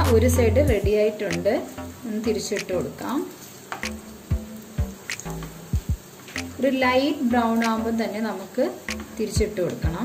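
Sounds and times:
banana slices sizzling in pan: 0.0s - 10.0s.

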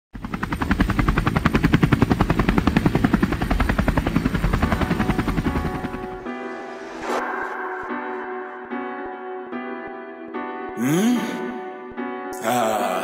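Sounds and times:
rapid even chopping pulses: 0.2s - 6.4s.

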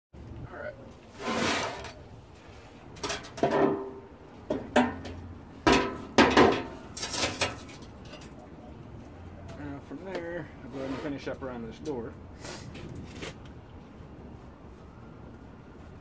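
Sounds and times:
metal clanks and clinks: 3.0s - 8.4s.

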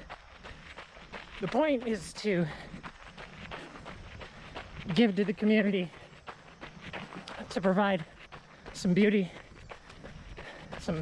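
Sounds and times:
running footsteps on gravel: 0.0s - 11.0s.

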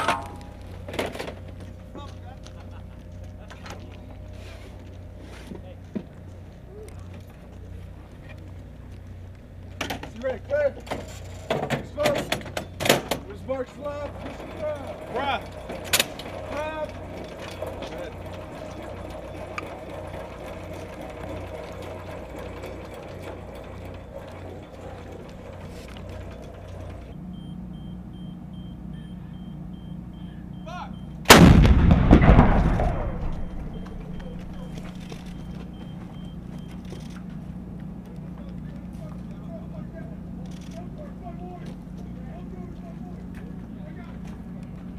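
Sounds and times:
steady background noise: 0.0s - 44.9s
crew voices: 13.2s - 27.2s, 33.2s - 44.9s
howitzer blast: 31.3s - 35.4s.

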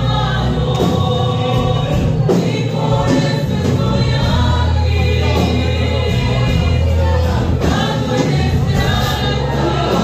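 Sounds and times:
choir singing a hymn: 0.0s - 10.0s
steady bass line: 0.0s - 10.0s.

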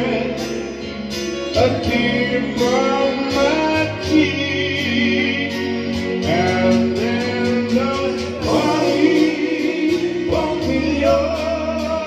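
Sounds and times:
electronic keyboard: 0.0s - 12.0s
man singing into microphone: 0.0s - 12.0s.

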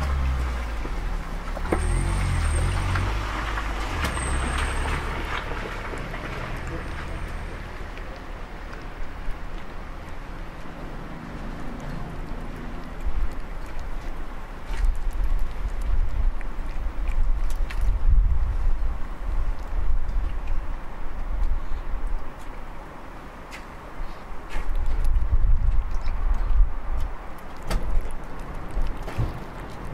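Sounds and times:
low steady rumble: 0.0s - 22.3s.

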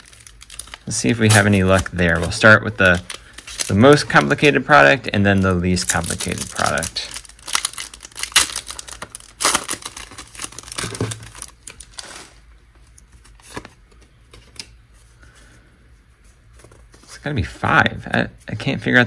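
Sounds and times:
foil wrapper crinkling and tearing: 0.0s - 12.4s.

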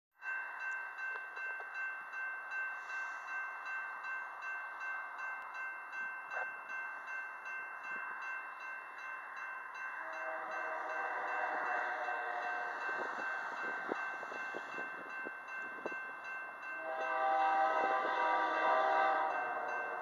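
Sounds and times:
railroad crossing bell ringing: 0.2s - 20.0s.

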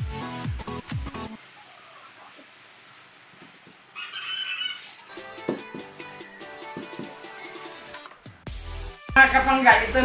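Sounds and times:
background music: 0.0s - 1.4s, 5.1s - 10.0s
rooster crowing: 3.9s - 5.2s.

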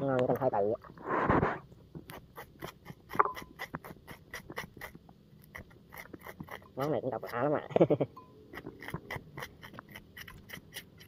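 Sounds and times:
metal spoon scraping banana: 8.5s - 11.0s.

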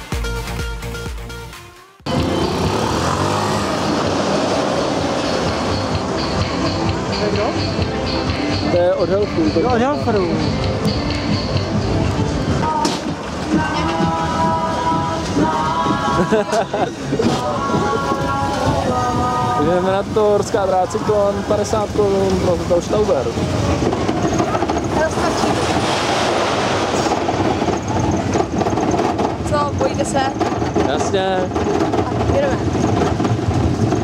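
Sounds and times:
fairground music: 0.0s - 23.9s
crowd voices: 2.1s - 32.8s
roller coaster wheels rumbling on rails: 2.1s - 34.0s.

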